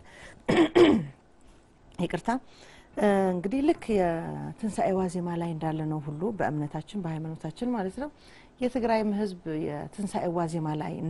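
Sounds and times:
woman clearing her throat: 0.5s - 1.2s.

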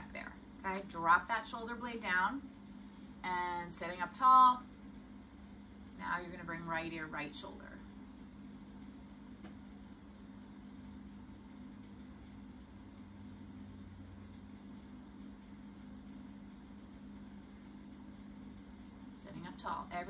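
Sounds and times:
constant low hum: 0.0s - 20.0s.

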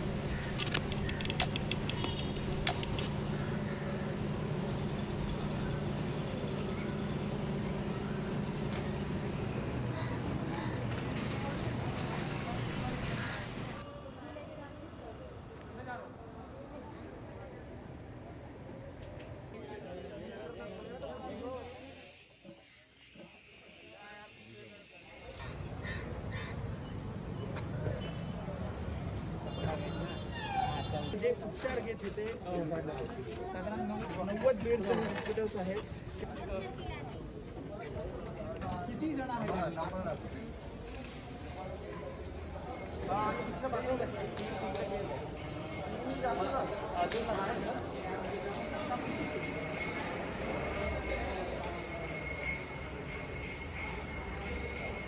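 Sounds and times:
vehicle engine idling: 0.0s - 10.8s
rapid sharp clicks: 0.5s - 3.2s
gas hissing from cylinder: 21.4s - 25.7s.

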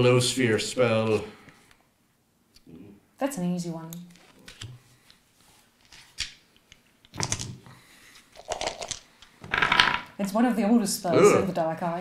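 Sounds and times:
dice rolling on wooden table: 7.1s - 7.7s, 8.4s - 10.4s.

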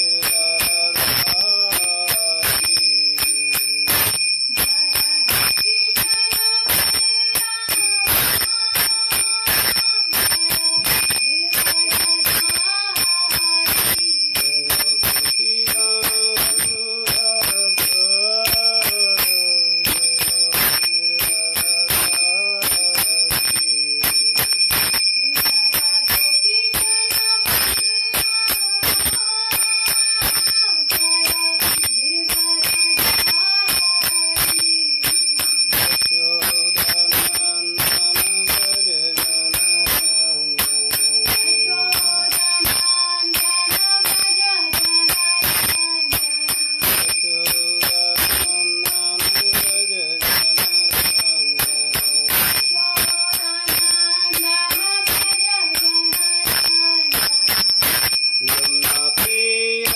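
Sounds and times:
high-pitched ringing: 0.0s - 59.9s
man chanting: 58.5s - 59.9s.

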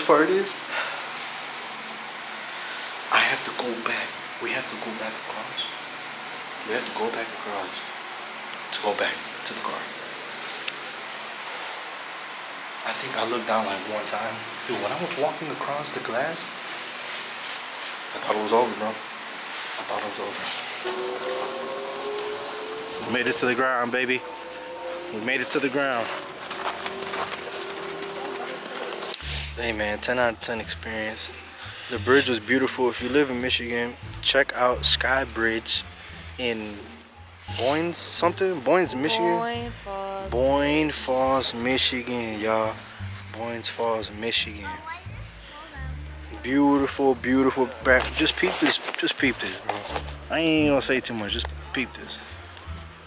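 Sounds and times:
footsteps on pavement: 26.0s - 29.2s.

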